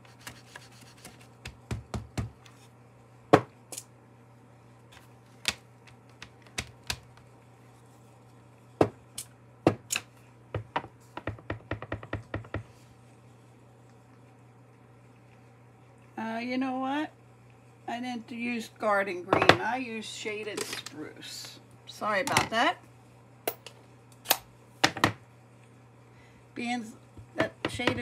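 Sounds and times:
faint low hum: 0.0 - 28.0.

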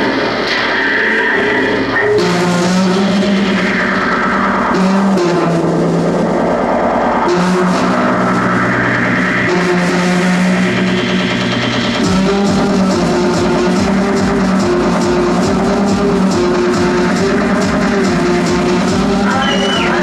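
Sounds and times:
synthesizer bass notes: 0.0 - 20.0.

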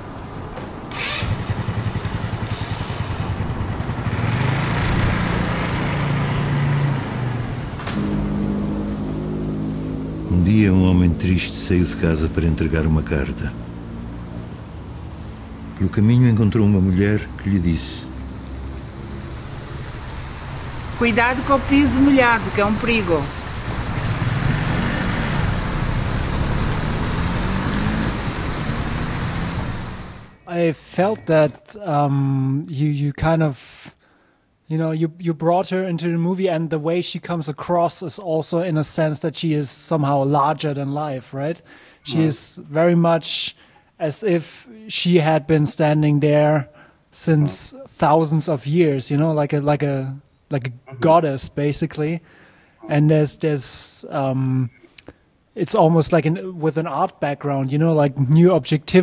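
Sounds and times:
rain falling: 0.0 - 31.5
scooter engine running: 0.9 - 7.0
scooter engine revving: 0.9 - 8.4, 22.5 - 30.2.

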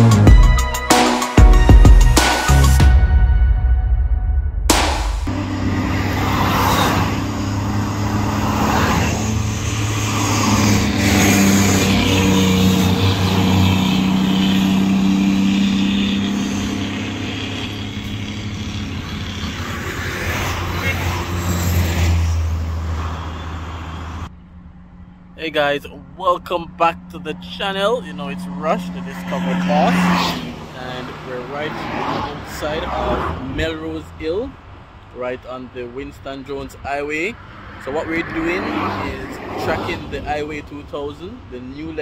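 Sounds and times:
dump truck passing: 2.4 - 35.4
cars passing: 4.6 - 42.0.

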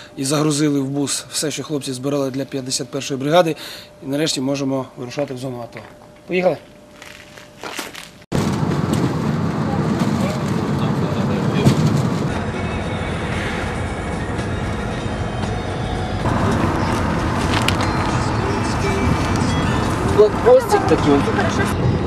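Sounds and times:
van road and engine noise: 7.9 - 22.0.

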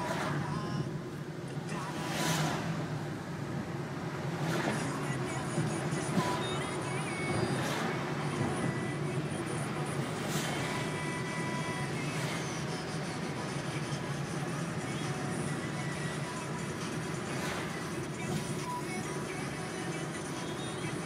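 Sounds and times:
car engine hum: 0.0 - 21.0.

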